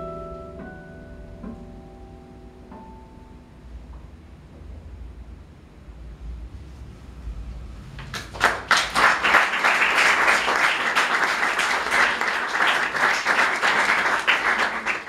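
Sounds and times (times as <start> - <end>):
audience applauding: 8.0 - 15.0.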